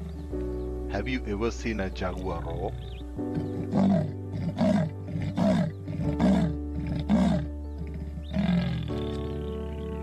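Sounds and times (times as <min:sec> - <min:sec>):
soft background music: 0:00.0 - 0:10.0
leopard rasping call: 0:02.7 - 0:10.0.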